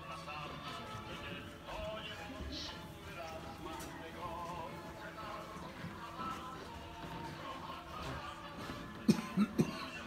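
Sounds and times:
background music: 0.0s - 10.0s
person coughing: 9.1s - 10.0s.

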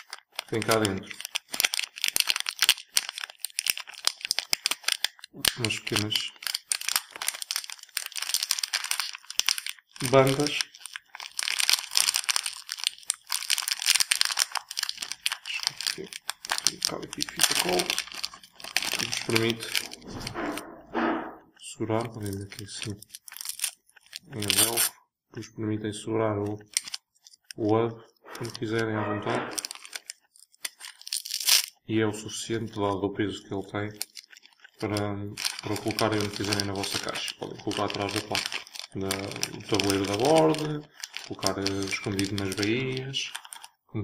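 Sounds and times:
paper envelope crackling and tearing: 0.0s - 20.6s, 22.0s - 24.9s, 26.6s - 27.6s, 28.3s - 31.8s, 33.8s - 43.8s
plastic bag crinkling: 0.0s - 20.9s, 21.6s - 24.9s, 26.4s - 31.9s, 33.6s - 43.8s.

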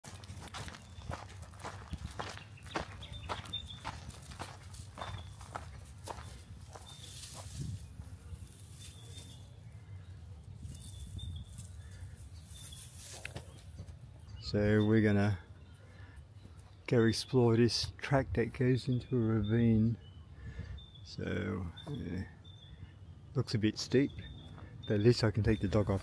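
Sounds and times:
footsteps on gravel: 0.0s - 9.1s.

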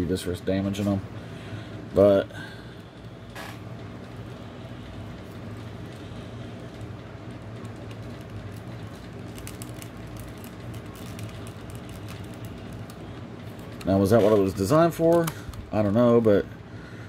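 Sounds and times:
low room hum: 0.0s - 17.0s.

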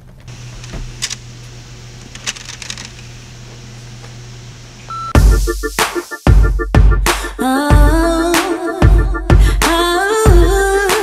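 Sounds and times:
steady low hum: 0.0s - 5.1s
short electronic beep: 4.9s - 5.2s.

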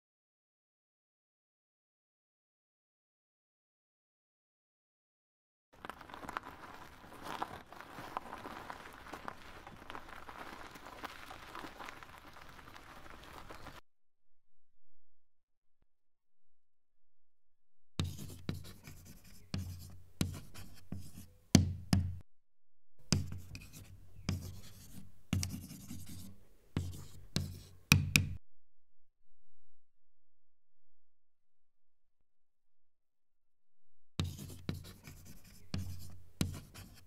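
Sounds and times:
chalk scratching on blackboard: 18.0s - 21.3s, 23.1s - 27.8s, 34.2s - 37.0s.

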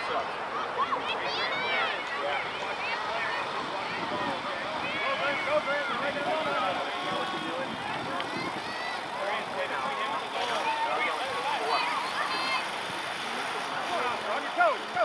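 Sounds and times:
indistinct voices calling and chattering: 0.0s - 15.0s.

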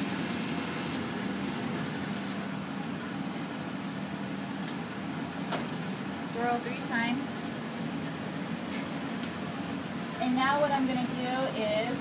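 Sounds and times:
cabinet blower whooshing hum: 0.0s - 12.0s.

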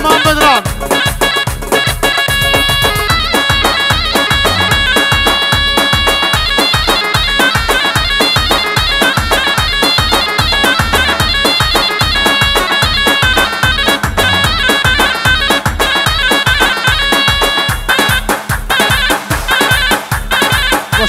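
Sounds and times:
fast drum beat: 0.0s - 21.0s
shrill reedy lead melody: 0.0s - 21.0s.

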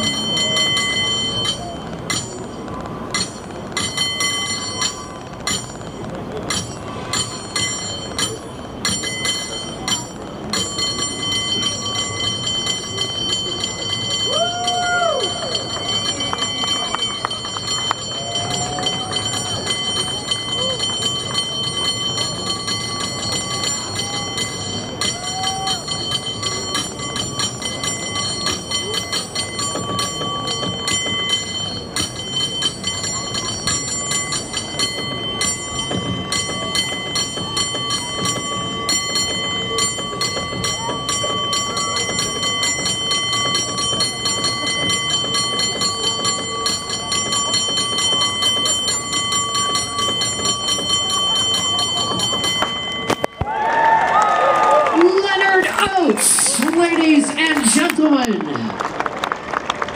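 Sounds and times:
cable car bell ringing: 0.0s - 59.9s.

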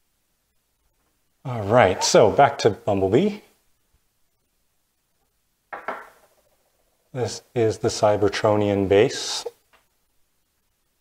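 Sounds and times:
man's voice murmuring: 1.5s - 3.4s.

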